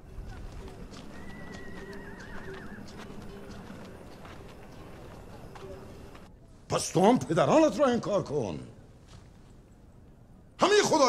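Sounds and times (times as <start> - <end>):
hoof clip-clops: 0.0 - 6.3.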